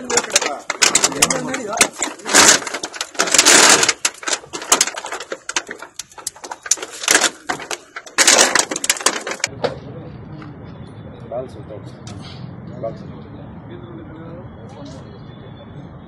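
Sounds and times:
glass crunching and crackling: 0.0 - 9.5
low traffic rumble: 0.0 - 16.0.

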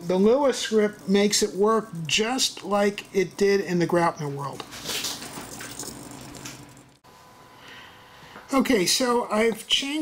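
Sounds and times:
faint background hum: 0.0 - 10.0.

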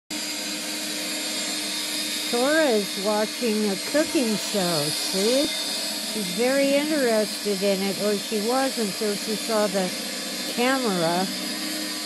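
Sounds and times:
appliance motor whirring: 0.2 - 12.0.

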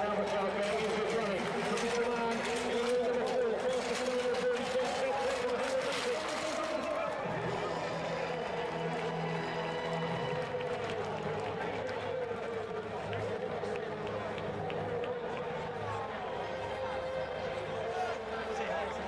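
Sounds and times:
music over public address: 0.0 - 19.0
stadium crowd noise: 0.0 - 19.0.

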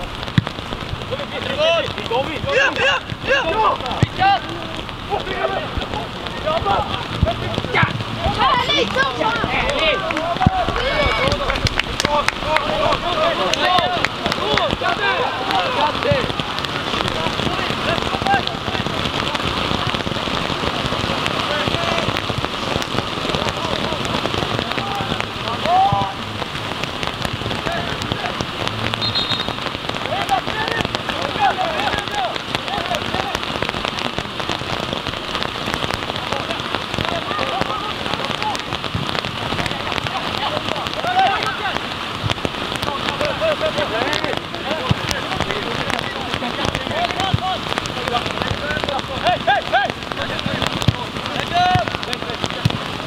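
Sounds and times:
rain falling on an umbrella: 0.0 - 53.0
faint shouts: 2.5 - 11.5.

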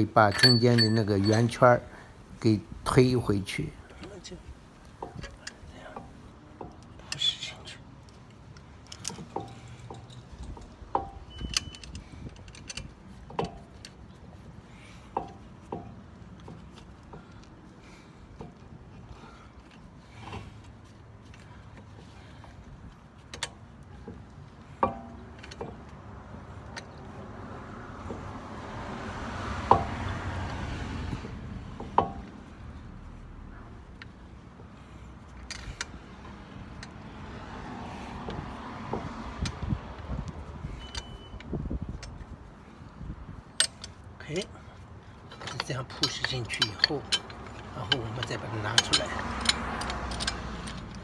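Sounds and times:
metal clicks and knocks: 0.0 - 1.7, 4.8 - 7.0, 8.0 - 14.1, 23.2 - 27.2, 31.2 - 32.4, 43.5 - 44.1, 45.2 - 51.0.

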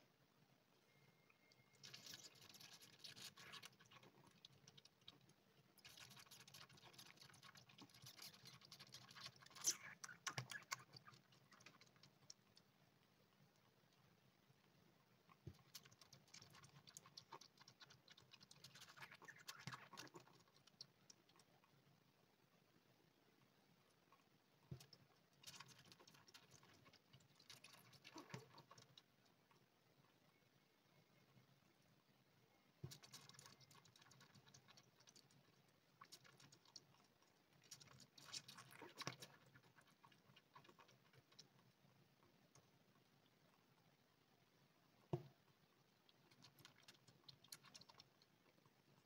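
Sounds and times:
kitten suckling wet clicks: 1.8 - 14.0, 15.2 - 21.8, 23.9 - 29.7, 32.8 - 43.7, 45.0 - 49.0.

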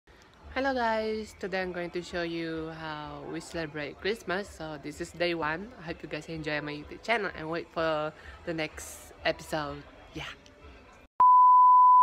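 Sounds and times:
steady test tone beep: 11.2 - 12.0.

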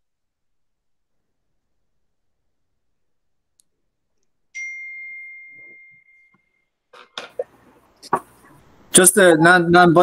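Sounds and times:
bright ringing ding: 4.6 - 6.7.

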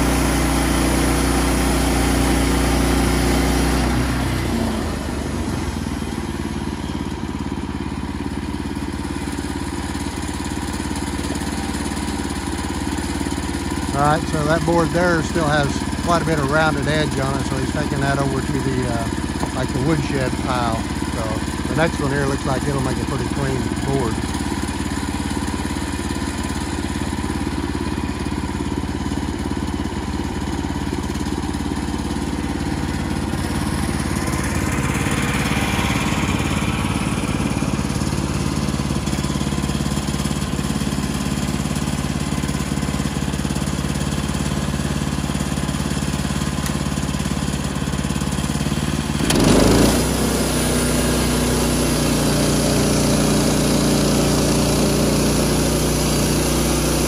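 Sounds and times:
sawmill gasoline engine running: 0.0 - 57.0.

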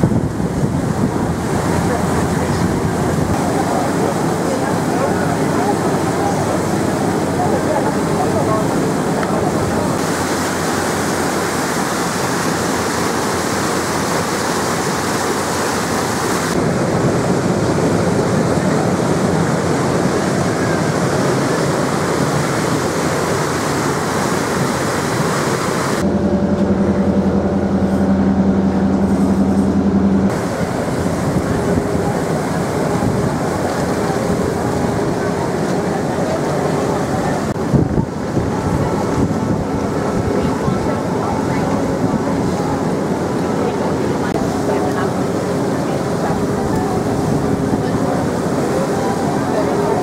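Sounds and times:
boat engine drone: 0.0 - 50.0
water rushing in boat wake: 0.0 - 50.0.

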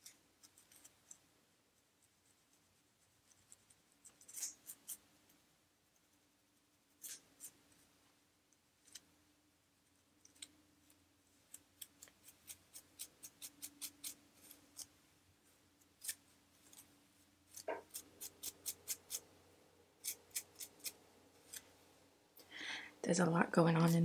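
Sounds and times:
comb scratching scalp: 2.0 - 5.1, 6.7 - 7.9, 11.4 - 15.0, 15.8 - 16.9, 17.5 - 19.4, 20.0 - 21.8.

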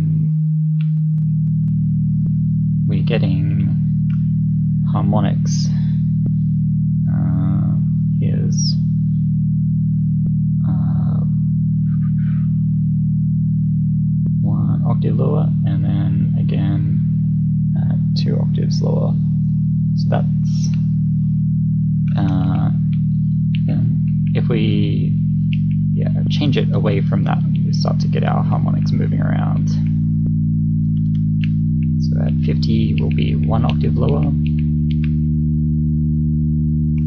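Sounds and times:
synth holding low tone: 0.0 - 37.0.

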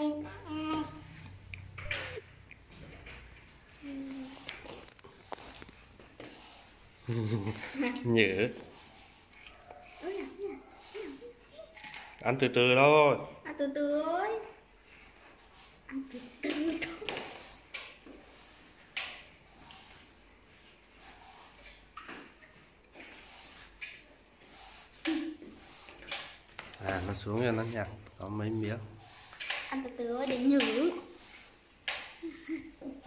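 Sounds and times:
faint rubbing noises: 3.0 - 11.7, 13.8 - 33.0
person humming: 7.1 - 7.6.

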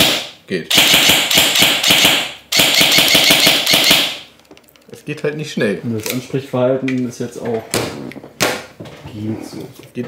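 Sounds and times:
airsoft gun firing full-auto: 0.0 - 4.2.

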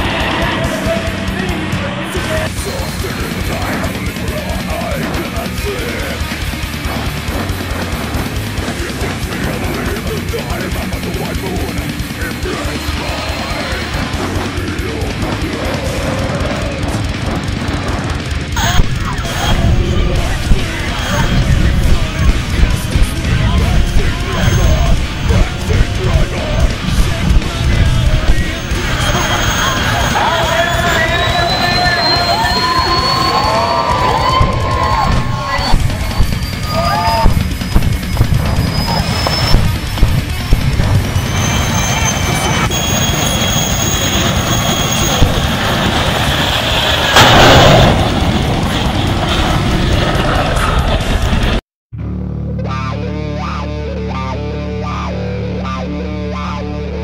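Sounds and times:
thin high whine: 0.0 - 10.6, 16.6 - 49.7
jet engine with afterburner: 0.0 - 51.6
loud rush: 0.0 - 51.6
sharp bangs: 0.0 - 51.6.

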